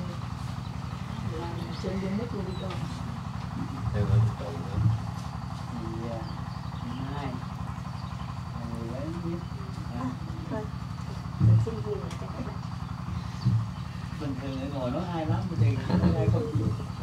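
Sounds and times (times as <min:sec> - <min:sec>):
low motor rumble: 0:00.0 - 0:17.0.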